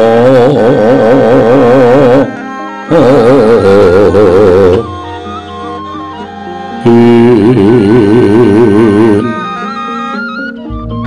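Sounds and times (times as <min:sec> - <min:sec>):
man singing a long note: 0:06.8 - 0:09.5.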